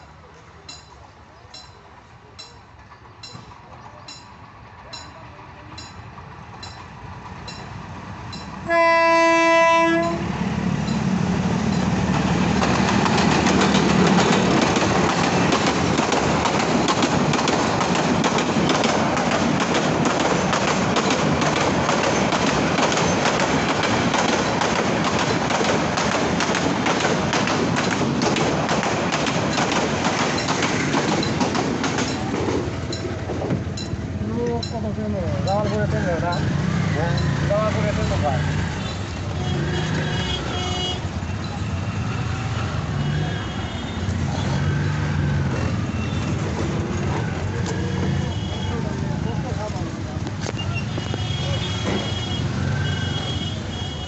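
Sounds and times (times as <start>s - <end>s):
passenger train passing: 0.0s - 54.0s
train wheels clattering on rails: 0.6s - 53.8s
train horn blast: 8.6s - 10.4s, 39.3s - 41.2s.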